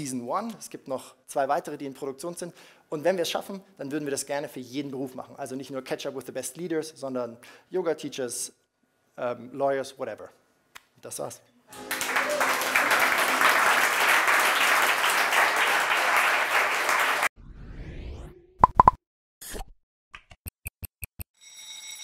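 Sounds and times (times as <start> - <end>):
audience applauding: 11.7 - 17.3
rising whoosh: 17.4 - 18.6.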